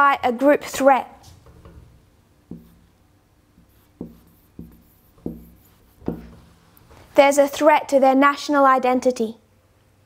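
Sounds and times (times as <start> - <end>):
marker writing on whiteboard: 1.2 - 7.2.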